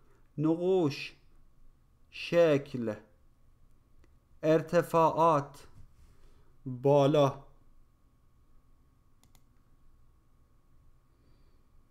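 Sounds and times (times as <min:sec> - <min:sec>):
computer mouse clicks: 0:09.2 - 0:09.6.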